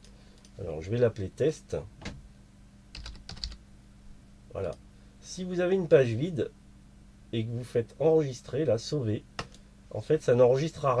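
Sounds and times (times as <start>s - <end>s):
typing on computer keyboard: 2.9s - 3.6s.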